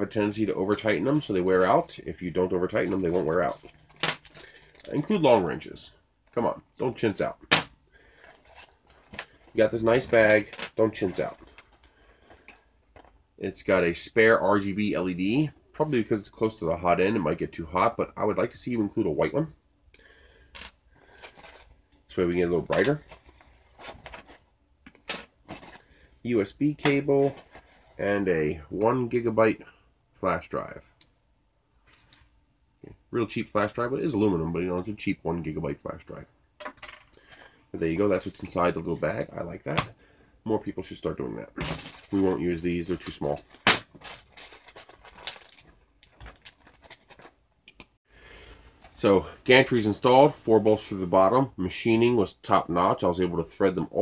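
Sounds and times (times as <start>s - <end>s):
plastic bag crinkling: 2.8s - 5.2s, 41.6s - 47.4s.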